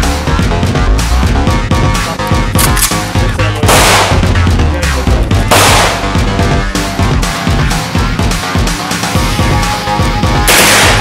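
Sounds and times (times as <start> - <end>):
background music with a beat: 0.0 - 11.0.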